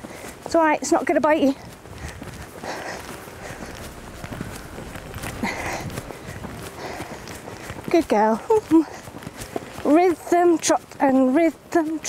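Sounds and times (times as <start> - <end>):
hooves trotting on sand: 0.0 - 12.0.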